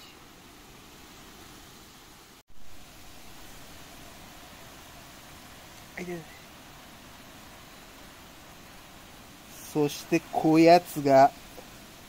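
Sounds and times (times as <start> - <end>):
rain and wind hiss: 0.0 - 12.0.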